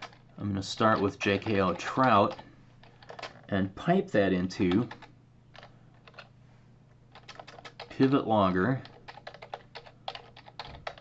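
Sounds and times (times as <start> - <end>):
computer keyboard typing: 0.0 - 3.5, 4.7 - 6.3, 7.1 - 8.2, 8.8 - 11.0
low steady hum: 0.0 - 11.0.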